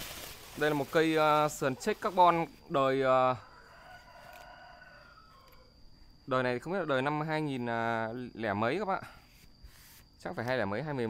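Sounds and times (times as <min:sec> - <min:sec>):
rooster crowing faintly: 0:00.6 - 0:06.0.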